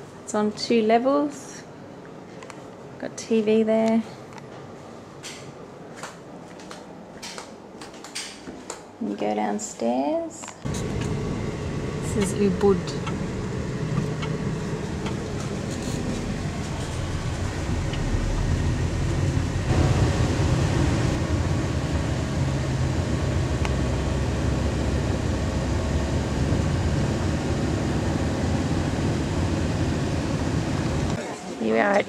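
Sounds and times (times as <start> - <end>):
car engine and road rumble: 10.7 - 31.2.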